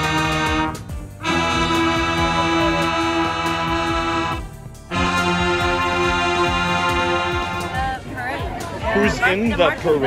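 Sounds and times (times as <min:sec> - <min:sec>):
wind band sustained chords: 0:00.0 - 0:10.0.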